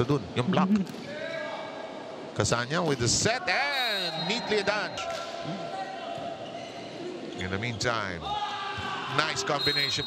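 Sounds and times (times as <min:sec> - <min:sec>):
large gym ambience: 0:00.0 - 0:10.0.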